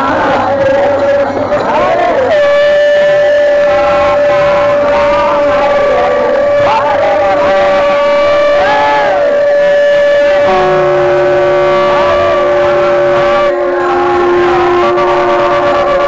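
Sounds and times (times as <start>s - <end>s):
crowd devotional chanting: 0.0s - 16.0s
held drone tones: 0.0s - 16.0s.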